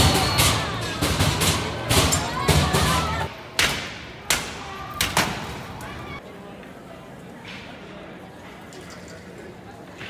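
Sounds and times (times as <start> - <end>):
street noise: 0.0 - 10.0
voices: 0.0 - 10.0.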